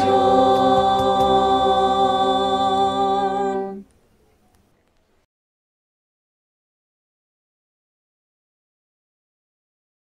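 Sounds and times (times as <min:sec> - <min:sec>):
choir singing sustained chord: 0:00.0 - 0:03.8
faint room noise: 0:00.0 - 0:05.3.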